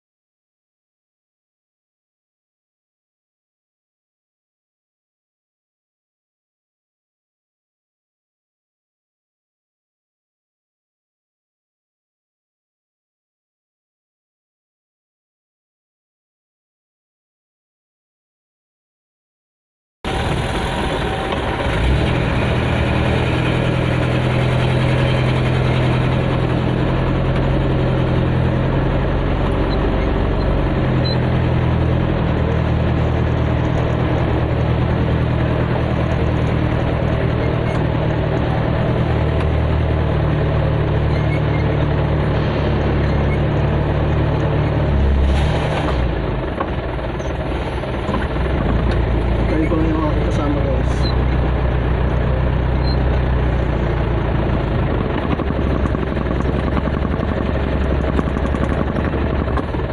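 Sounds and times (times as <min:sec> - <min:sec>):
vehicle engine droning: 0:20.1 - 0:59.9.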